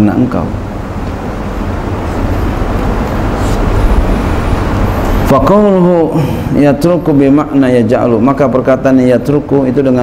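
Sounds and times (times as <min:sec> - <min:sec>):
low rumbling noise: 0:00.0 - 0:10.0.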